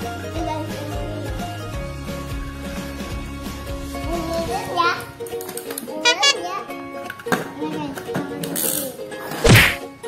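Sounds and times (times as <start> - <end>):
background music: 0.0 - 10.0
child's voice: 4.1 - 5.1.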